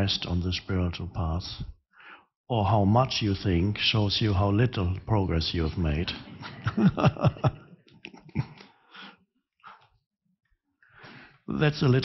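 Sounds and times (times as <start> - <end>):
man breathing faintly: 1.9 - 2.4, 8.5 - 10.0, 10.8 - 11.5.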